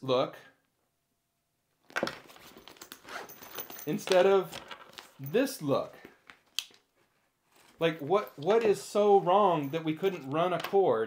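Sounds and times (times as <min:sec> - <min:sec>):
bag fabric and zipper rustling: 0:01.9 - 0:05.6, 0:06.9 - 0:09.3.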